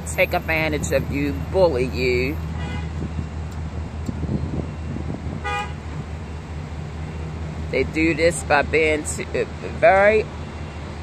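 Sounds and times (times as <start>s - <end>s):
car horn beep: 2.6s - 3.1s, 5.4s - 5.8s.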